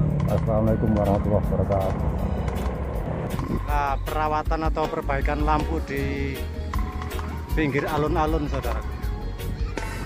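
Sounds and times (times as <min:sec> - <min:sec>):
motorcycle engine running: 0:00.0 - 0:04.0
man talking: 0:00.3 - 0:02.2, 0:03.5 - 0:06.5, 0:07.5 - 0:08.8
wind rumble on microphone: 0:01.5 - 0:03.8.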